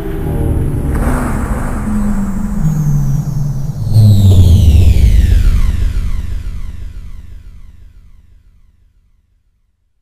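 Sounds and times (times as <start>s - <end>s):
electronic music: 1.0s - 8.6s.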